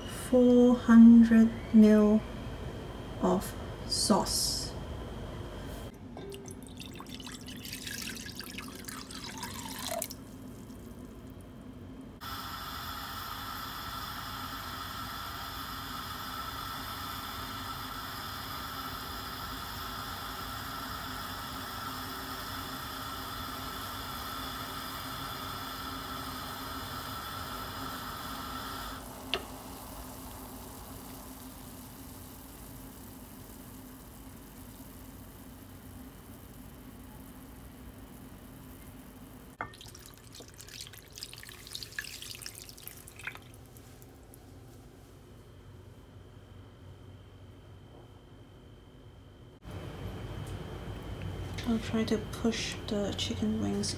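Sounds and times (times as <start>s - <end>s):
gas hob hissing: 5.6s - 11.2s, 12.2s - 44.5s, 51.5s - 53.9s
sauce pouring into metal pot: 6.3s - 10.8s, 39.6s - 43.7s.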